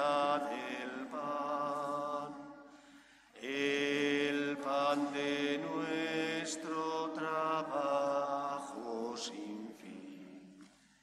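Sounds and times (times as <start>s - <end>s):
slow hymn singing: 0.0s - 11.0s.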